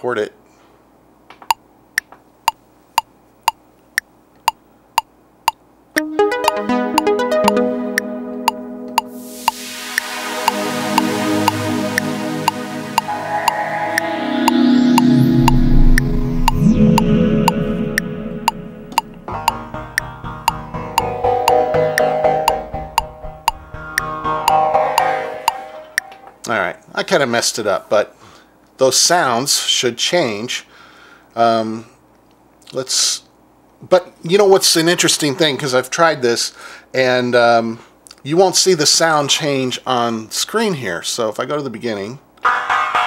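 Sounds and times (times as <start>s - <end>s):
metronome clicking: 1.5s - 26.2s
synthesizer notes: 6.0s - 26.5s.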